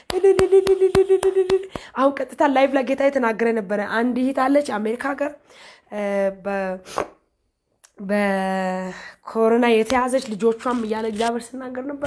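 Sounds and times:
woman repeating rapid syllable: 0.0s - 2.2s.

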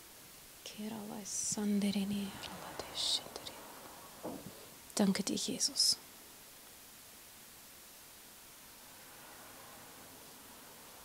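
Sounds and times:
woman whispering: 0.6s - 3.7s, 5.0s - 6.0s.

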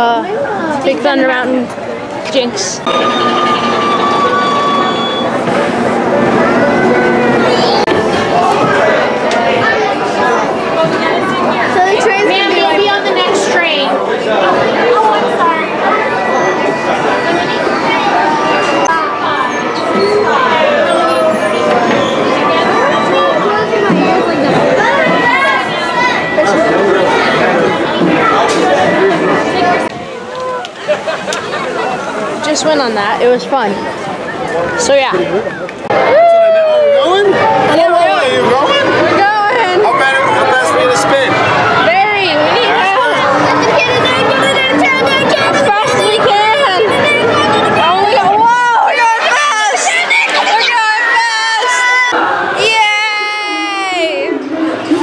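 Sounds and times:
people chattering: 0.0s - 55.0s
roller coaster wheels rumbling: 2.8s - 15.0s, 20.6s - 50.6s
high wheel squeal: 2.9s - 12.4s, 16.1s - 23.9s.

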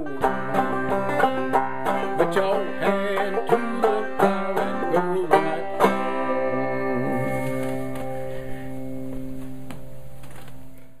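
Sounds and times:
banjo chord ringing: 0.0s - 9.4s
banjo strums: 0.0s - 10.1s.

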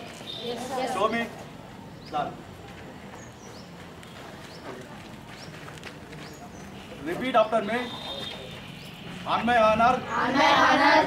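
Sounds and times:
outdoor background hum: 0.0s - 11.0s.

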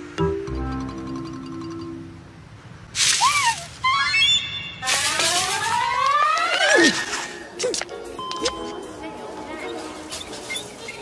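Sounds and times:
cartoon rising squeaks: 3.1s - 7.2s.

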